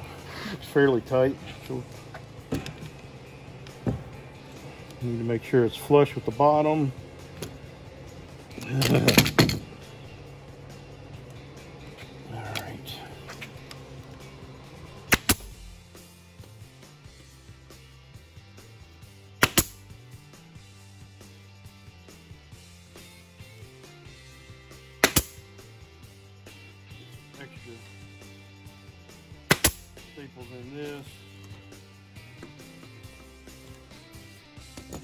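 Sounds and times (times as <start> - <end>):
pneumatic stapler firing: 15.1 - 15.6, 19.4 - 19.8, 25.0 - 25.4, 29.5 - 29.9.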